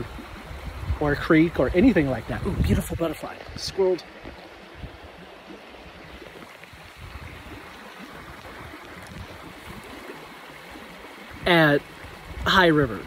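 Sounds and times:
creek rushing: 0:00.0 - 0:13.0.

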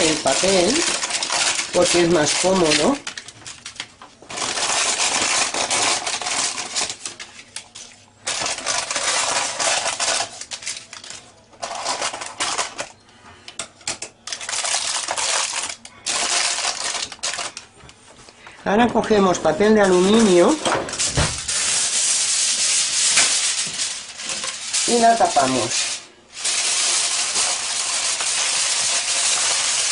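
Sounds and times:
scissors cutting crackling paper: 0:00.0 - 0:12.9, 0:13.9 - 0:17.6, 0:23.1 - 0:29.9.

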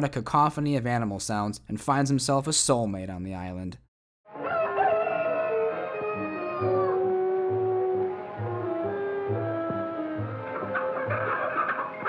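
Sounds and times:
film music with low pulse: 0:05.9 - 0:12.0.

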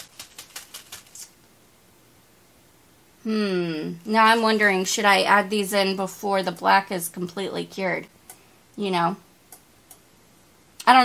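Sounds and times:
sprinkles rattling in plastic bag: 0:00.0 - 0:01.3.

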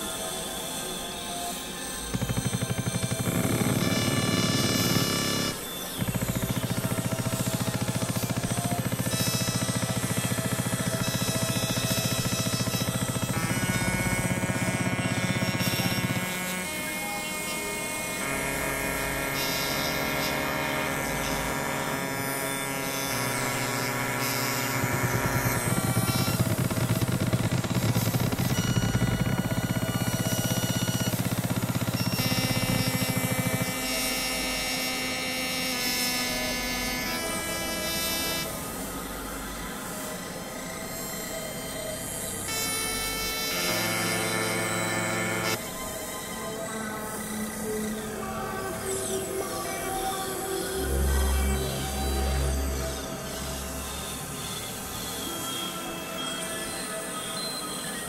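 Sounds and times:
synthesizer held tones: 0:00.0 - 0:58.0.

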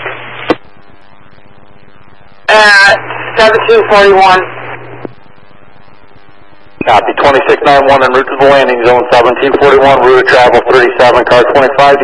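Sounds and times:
radio hiss and hum: 0:00.0 - 0:12.0
radio squelch noise: 0:00.0 - 0:12.0.

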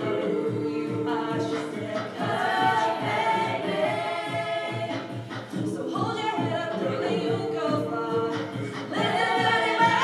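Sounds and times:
band with steady drum beat: 0:00.0 - 0:10.0
choir singing in harmony: 0:00.0 - 0:10.0.

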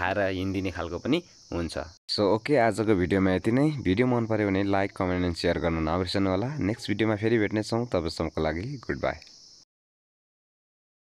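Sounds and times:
person talking: 0:00.0 - 0:09.2
steady high hiss: 0:00.0 - 0:09.7.

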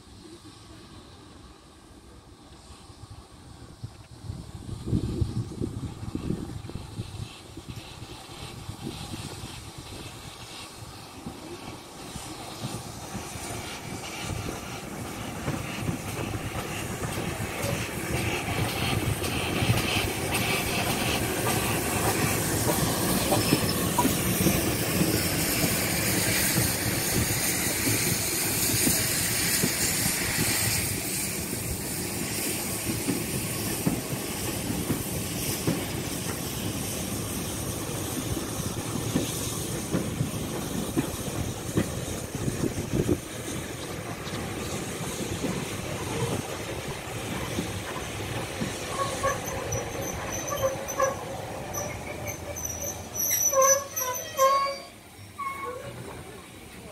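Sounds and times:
steam hissing: 0:00.0 - 0:56.9
train wheels running over rails: 0:03.8 - 0:53.5.

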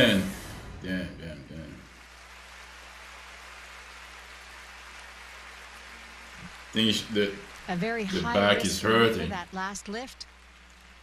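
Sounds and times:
faint electrical hum: 0:00.0 - 0:11.0
arena crowd applause: 0:01.8 - 0:11.0.

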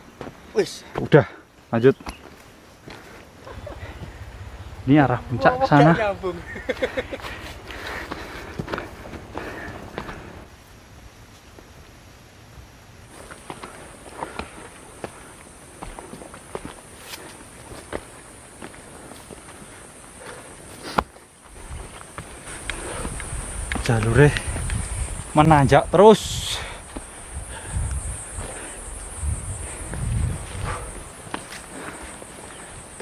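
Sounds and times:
footsteps on dirt trail: 0:00.0 - 0:04.8, 0:05.7 - 0:10.6, 0:13.1 - 0:26.0, 0:26.6 - 0:33.0.

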